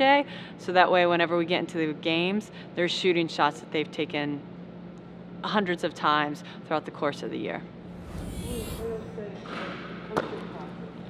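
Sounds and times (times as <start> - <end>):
steady low hum: 7.7 - 9.2.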